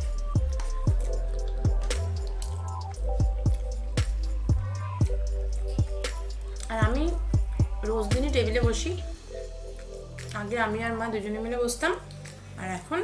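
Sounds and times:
bass line: 0:00.0 - 0:11.5.

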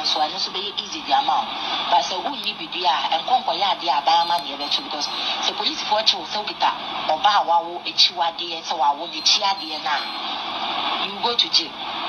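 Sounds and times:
woman talking: 0:00.0 - 0:10.2, 0:11.0 - 0:11.8.

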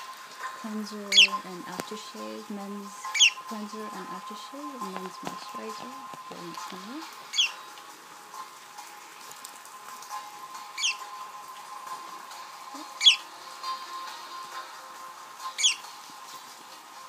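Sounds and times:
budgerigar chirping: 0:01.1 - 0:01.4, 0:03.0 - 0:03.5, 0:07.3 - 0:07.6, 0:10.8 - 0:11.1, 0:12.8 - 0:13.3, 0:15.5 - 0:15.9.

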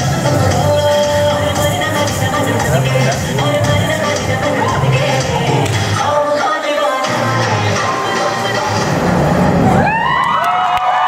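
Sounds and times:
dance music with heavy bass: 0:00.0 - 0:10.2
audience cheering: 0:09.5 - 0:11.0.

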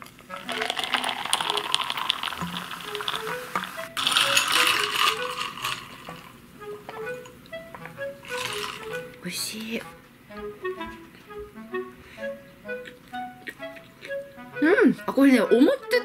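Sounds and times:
soft drink fizzing in glass: 0:00.0 - 0:06.3, 0:08.2 - 0:09.0
light background music: 0:00.0 - 0:16.0.

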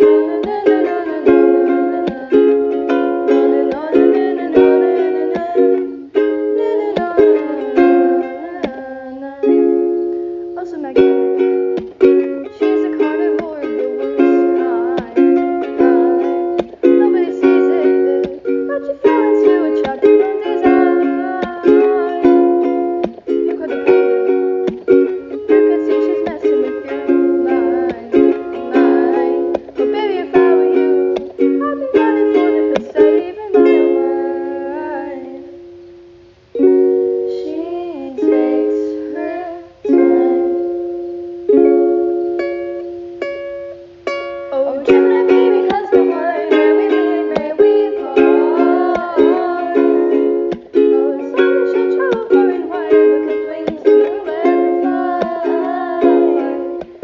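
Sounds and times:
plucked string chords: 0:00.0 - 0:57.0.

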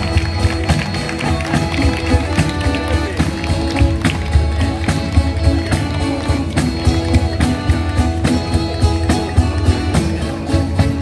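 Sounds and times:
accordion: 0:00.0 - 0:11.0
acoustic guitars playing: 0:00.0 - 0:11.0.

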